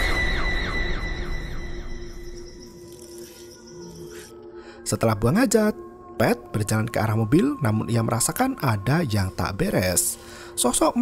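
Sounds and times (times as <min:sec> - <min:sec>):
low drone: 0:00.0 - 0:04.8.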